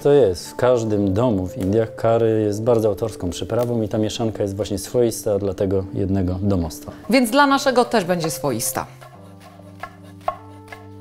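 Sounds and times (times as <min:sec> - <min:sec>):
knife chopping on wooden board: 0:08.1 - 0:11.0.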